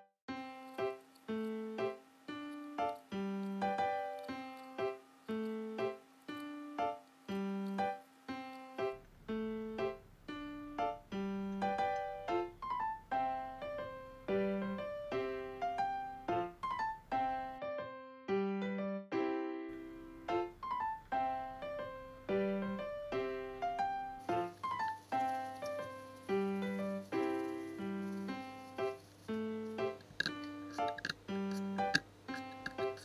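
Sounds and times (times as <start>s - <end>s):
light piano melody: 0.0s - 33.0s.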